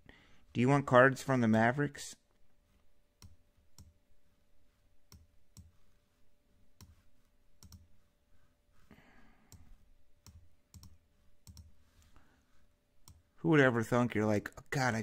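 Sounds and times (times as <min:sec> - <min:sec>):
computer mouse clicks: 0:03.2 - 0:04.0, 0:05.1 - 0:05.8, 0:06.8 - 0:07.0, 0:07.6 - 0:07.9, 0:09.5 - 0:12.1, 0:13.0 - 0:13.2.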